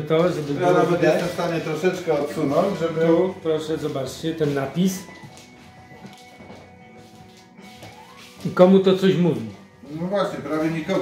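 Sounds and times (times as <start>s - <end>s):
quiet music with held notes: 0.0s - 11.0s.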